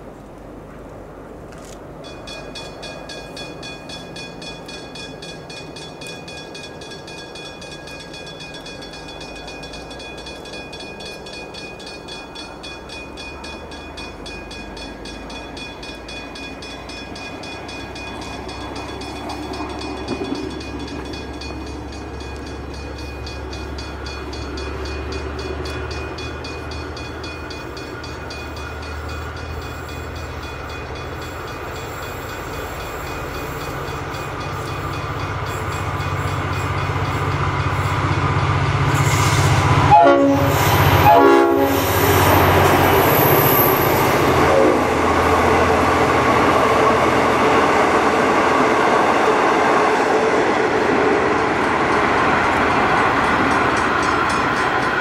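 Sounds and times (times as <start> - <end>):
diesel train engine rumble: 0.0 - 55.0
train wheel and rail noise: 0.0 - 55.0
train horn blasts: 38.9 - 42.4, 44.4 - 45.1.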